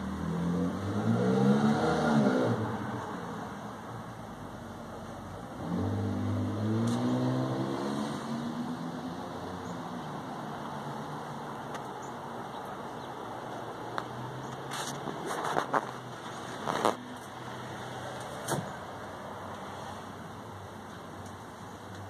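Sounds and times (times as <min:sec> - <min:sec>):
vehicle engine accelerating: 0:00.0 - 0:03.6, 0:05.5 - 0:09.7.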